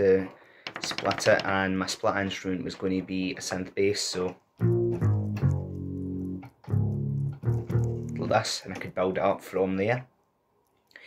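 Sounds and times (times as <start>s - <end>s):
synth bass keyboard notes: 4.6s - 8.3s.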